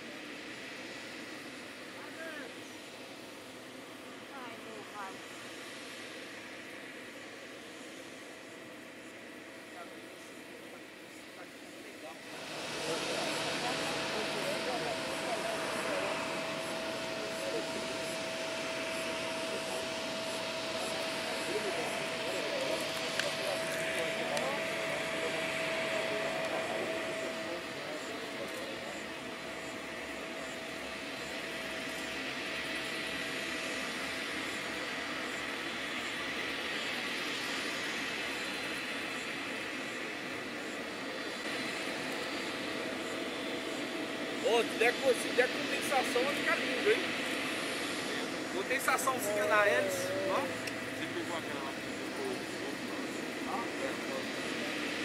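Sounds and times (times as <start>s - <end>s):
high engine whine: 0.0s - 55.0s
turboprop engines droning: 0.0s - 55.0s.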